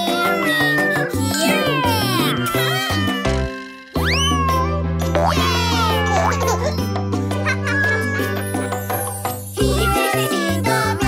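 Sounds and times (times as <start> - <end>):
cartoon cat meowing: 0.0 - 6.6, 7.6 - 8.4
upbeat instrumental children's music: 0.0 - 11.0.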